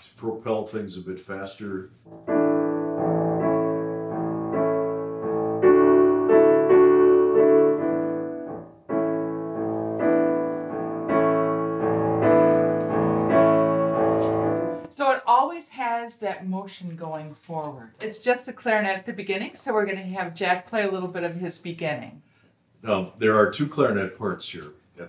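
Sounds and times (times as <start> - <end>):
grand piano chords: 2.1 - 15.0.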